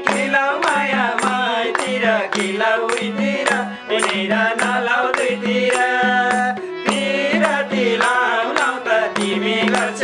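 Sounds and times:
harmonium drone: 0.0s - 10.0s
men singing folk song: 0.0s - 10.0s.

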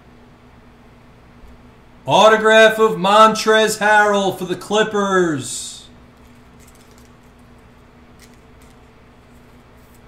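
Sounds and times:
steady low hum: 0.0s - 10.0s
trading cards clicking: 6.2s - 8.9s.

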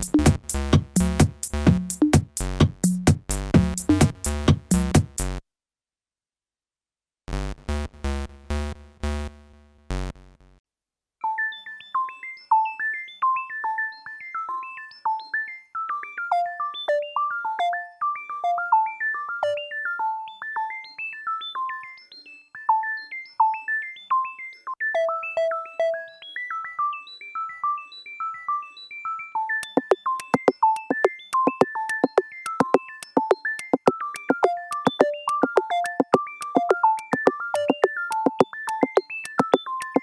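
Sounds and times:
synthesizer beeping melody: 29.6s - 40.0s.

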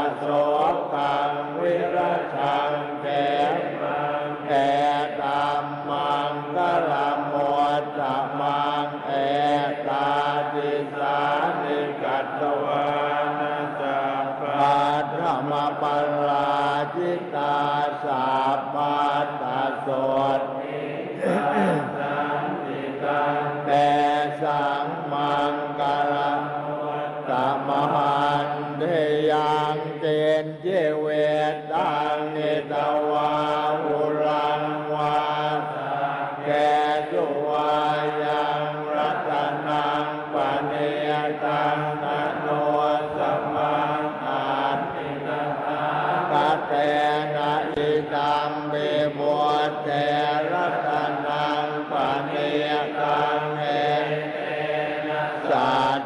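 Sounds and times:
monks chanting in unison: 0.0s - 56.0s.

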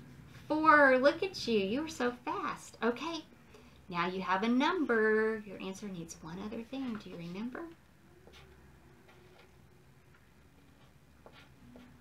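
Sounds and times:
pen writing on paper: 10.7s - 12.0s.

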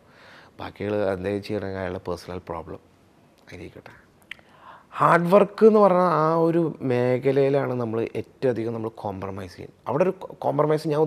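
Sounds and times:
man breathing softly: 0.0s - 0.6s, 4.4s - 5.0s
mouth noises and lip click: 4.1s - 4.6s.

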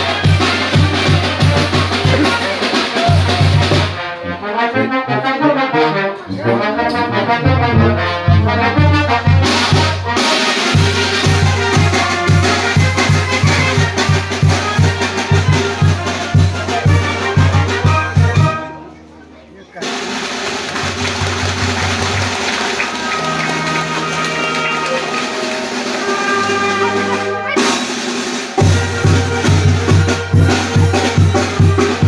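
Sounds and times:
voices: 0.0s - 3.9s, 14.4s - 27.9s
tuba and bass drum beat: 0.0s - 18.9s, 19.8s - 32.0s
brass band playing dance music: 0.0s - 32.0s.

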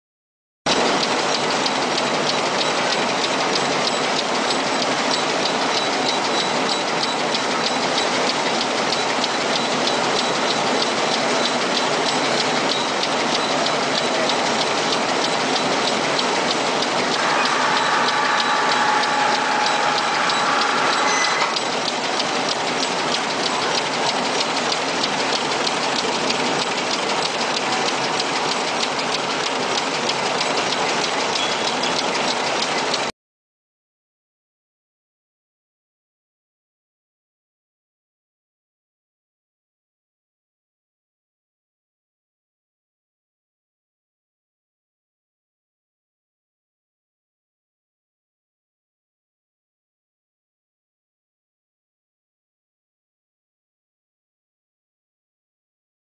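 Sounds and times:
knitting machines clattering: 0.7s - 33.1s.

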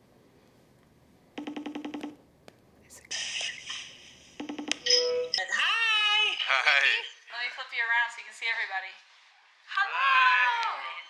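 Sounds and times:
hissing noise burst: 3.0s - 4.4s.

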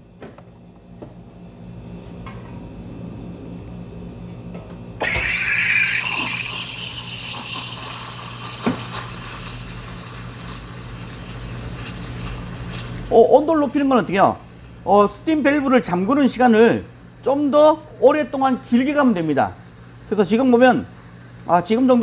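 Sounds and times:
steady low hum: 0.0s - 22.0s
steam wand hissing: 5.0s - 10.6s.

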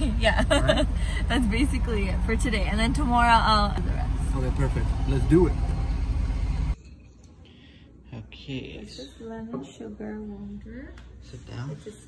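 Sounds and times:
car cabin road noise: 0.0s - 6.8s.

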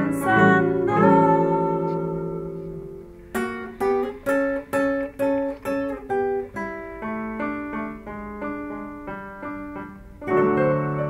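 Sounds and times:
classical guitar melody: 0.0s - 11.0s.

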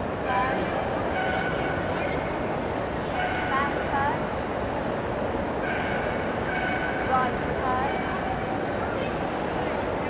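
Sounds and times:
murmur of large crowd: 0.0s - 10.0s.

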